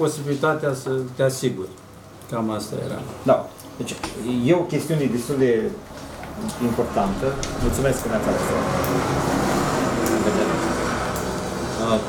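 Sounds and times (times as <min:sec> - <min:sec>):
passing vehicle rumble: 0:06.6 - 0:12.0.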